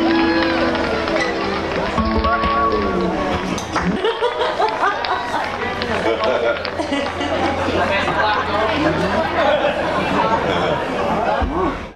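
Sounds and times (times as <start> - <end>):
indistinct chatter of voices: 0.0 - 11.9.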